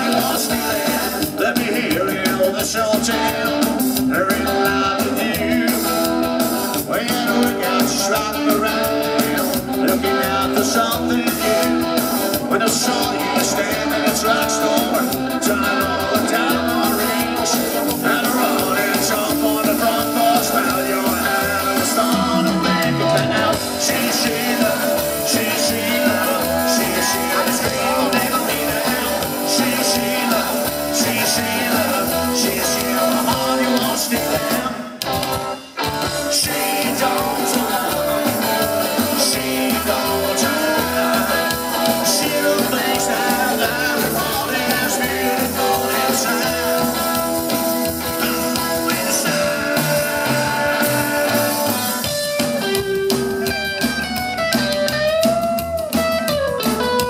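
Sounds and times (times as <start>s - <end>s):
drum kit: 0.0s - 57.0s
electric guitar: 0.0s - 57.0s.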